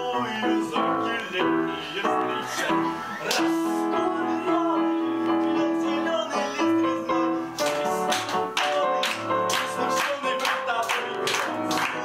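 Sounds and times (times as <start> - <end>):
piano accompaniment: 0.0 - 12.0.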